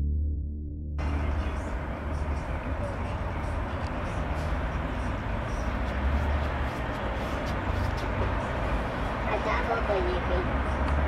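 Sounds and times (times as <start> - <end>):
road traffic with deep rumble: 1.0 - 11.0.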